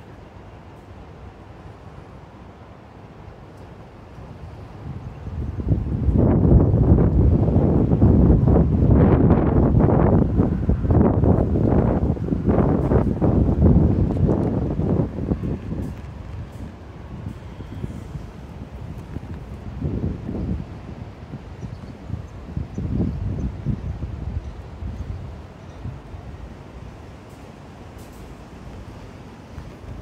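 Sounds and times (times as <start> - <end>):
wind buffeting microphone: 4.5 - 27.1, 27.9 - 30.0.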